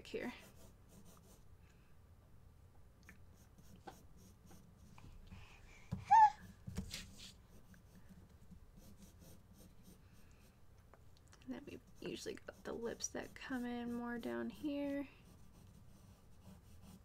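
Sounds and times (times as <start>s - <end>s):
pencil sketching on paper: 0.2s - 1.5s, 3.3s - 5.0s, 6.4s - 10.6s, 11.6s - 17.0s
baby squealing: 6.0s - 6.4s.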